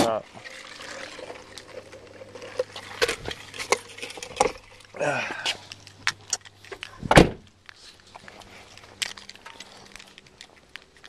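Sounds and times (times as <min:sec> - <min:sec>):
rustling of carried things: 0:00.0 - 0:11.0.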